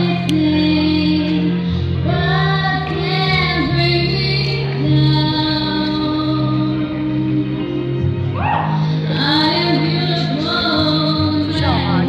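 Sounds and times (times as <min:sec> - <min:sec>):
woman singing into a microphone: 0:00.0 - 0:08.0, 0:08.8 - 0:12.0
musical accompaniment: 0:00.0 - 0:12.0.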